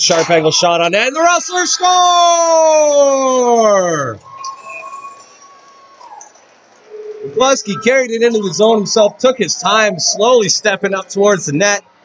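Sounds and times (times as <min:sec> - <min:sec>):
faint arena crowd noise: 0:00.0 - 0:12.0.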